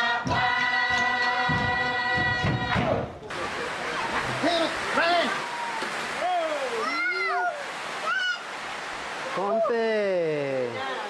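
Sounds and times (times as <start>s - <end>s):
group singing a long note: 0.0s - 3.2s
dull thumps: 0.2s - 3.2s.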